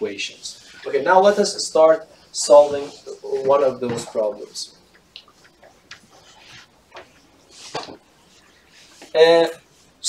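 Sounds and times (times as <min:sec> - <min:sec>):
eraser rubbing on whiteboard: 0:01.1 - 0:03.6.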